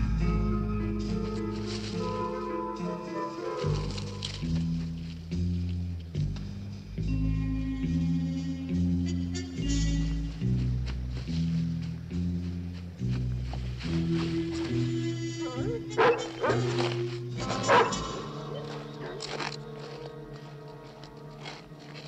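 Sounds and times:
low stepping score notes: 0.0 - 22.0
large dog barking: 15.4 - 20.0.

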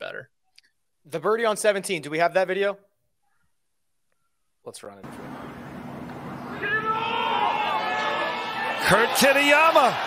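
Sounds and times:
crowd murmur: 5.1 - 8.8
spectators shouting together: 6.5 - 10.0.

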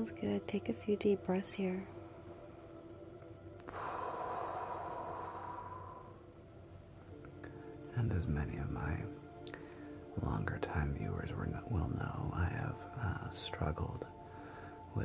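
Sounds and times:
soft synth pad: 0.0 - 15.0
long deep breath out: 3.7 - 6.4, 14.3 - 14.9.

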